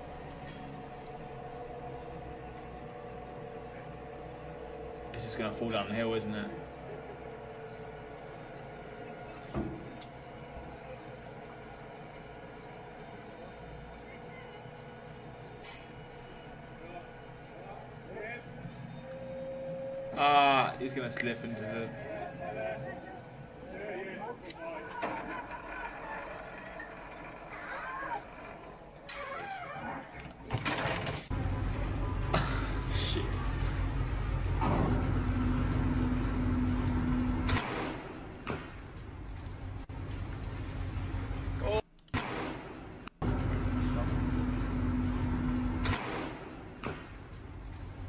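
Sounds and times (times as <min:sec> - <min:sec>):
ship engine rumble: 0:00.0 - 0:41.8
tractor running: 0:00.0 - 0:48.0
voices in background: 0:16.7 - 0:28.9
loud rush of tractor toppling: 0:24.5 - 0:39.0.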